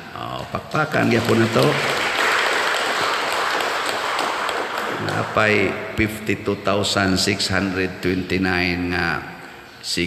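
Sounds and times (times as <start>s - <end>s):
crowd applauding: 0.7s - 5.8s.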